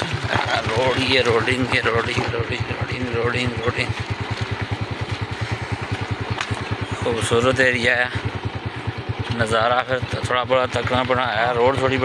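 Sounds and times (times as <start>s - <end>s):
van engine idling: 0.0s - 12.0s.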